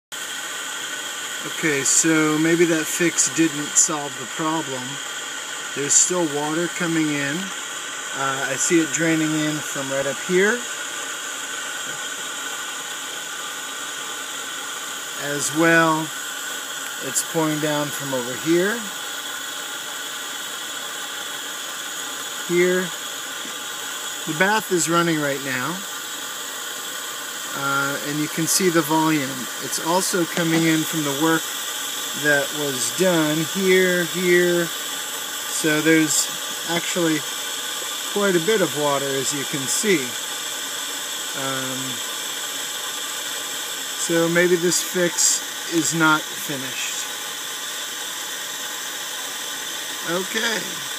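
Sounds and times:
bath tap water hissing: 0:00.1 - 0:50.9.

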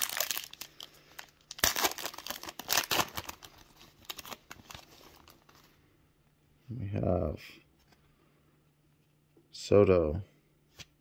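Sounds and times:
foil wrapper tearing and crinkling: 0:00.0 - 0:05.4.

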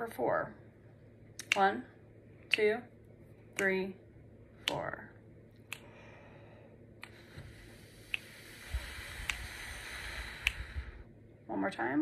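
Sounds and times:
exhaling through pursed lips: 0:05.8 - 0:11.1
person inhaling: 0:05.8 - 0:11.1.

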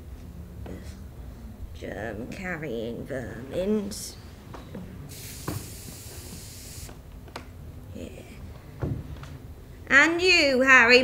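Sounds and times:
aerosol spray can hissing: 0:05.1 - 0:07.0.

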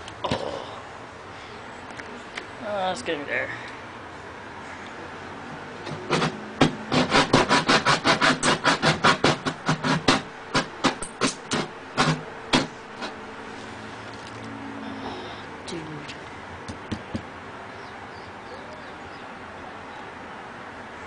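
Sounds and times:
hand saw cutting wood: 0:05.8 - 0:13.2.

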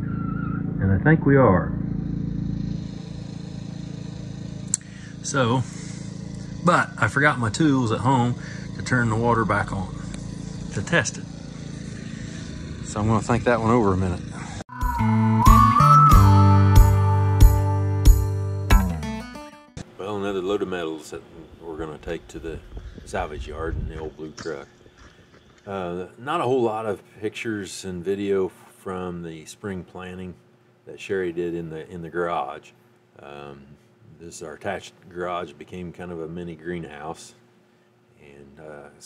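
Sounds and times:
man talking: 0:00.8 - 0:01.7, 0:06.6 - 0:10.0, 0:20.0 - 0:24.7, 0:25.7 - 0:37.4, 0:38.2 - 0:39.0
motor humming: 0:02.2 - 0:15.7
acoustic guitar music: 0:14.7 - 0:19.8.

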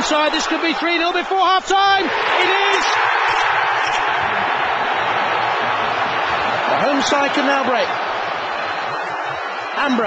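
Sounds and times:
stadium crowd cheering: 0:00.0 - 0:10.0.

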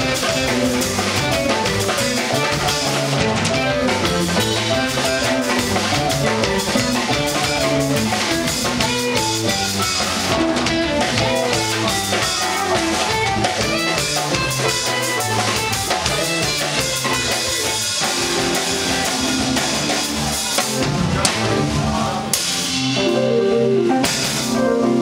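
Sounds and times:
bass: 0:00.0 - 0:25.0
drum kit: 0:00.0 - 0:25.0
electric guitar: 0:00.0 - 0:25.0
keyboard: 0:00.0 - 0:25.0.

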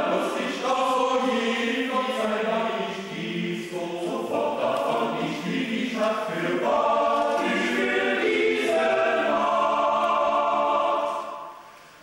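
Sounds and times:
men's choir singing a cappella: 0:00.0 - 0:11.6.

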